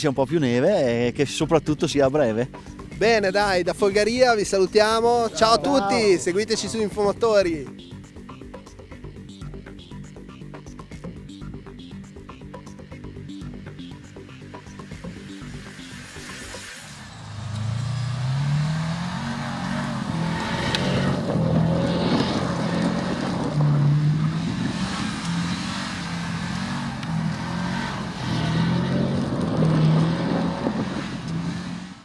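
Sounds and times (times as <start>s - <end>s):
car engine revving hard: 15.2s - 32.0s.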